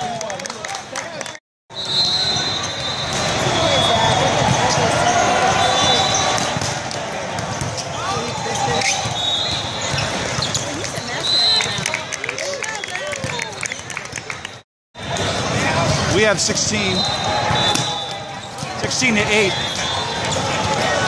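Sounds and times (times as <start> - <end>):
babble of many voices: 2.7 - 21.0
sneaker squeaks on court: 7.5 - 11.8.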